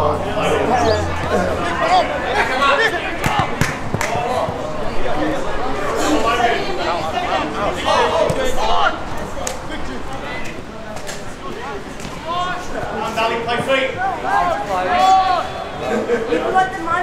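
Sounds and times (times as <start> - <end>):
voices shouting and calling: 0.0 - 17.0.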